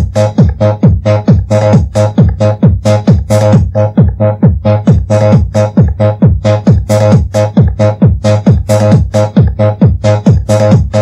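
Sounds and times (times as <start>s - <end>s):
fast electronic dance music: 0.0s - 11.0s.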